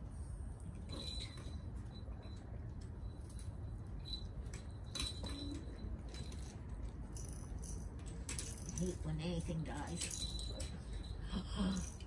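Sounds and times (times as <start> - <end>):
low outdoor rumble: 0.0 - 12.0
rattle: 0.6 - 12.0.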